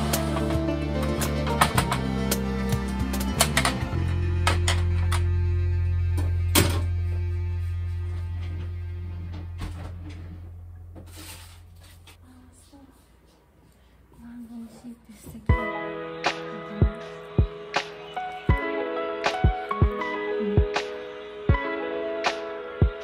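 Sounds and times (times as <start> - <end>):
background music low note: 0.0 - 11.2.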